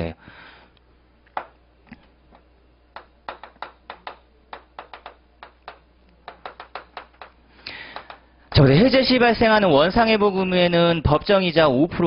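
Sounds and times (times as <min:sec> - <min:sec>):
chalk tapping on chalkboard: 0:03.0 - 0:08.2.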